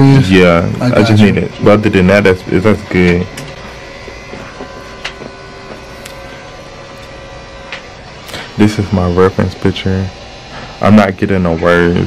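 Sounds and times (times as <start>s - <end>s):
faint steady tones: 0.0s - 12.0s
mechanical hum: 0.0s - 12.0s.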